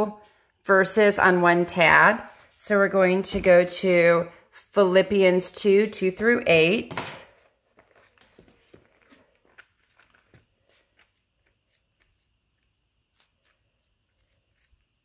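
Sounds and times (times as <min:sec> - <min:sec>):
pages rustling: 0:07.6 - 0:15.0.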